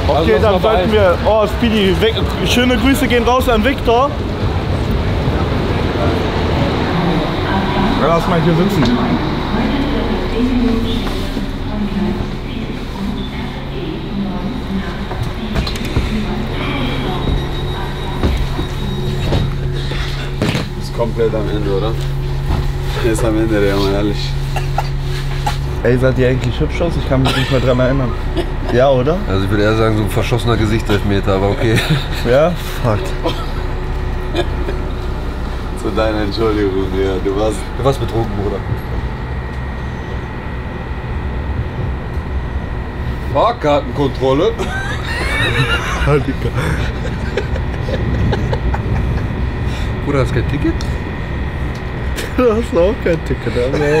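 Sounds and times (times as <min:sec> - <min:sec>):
train carriage interior hum: 0:00.0 - 0:54.0.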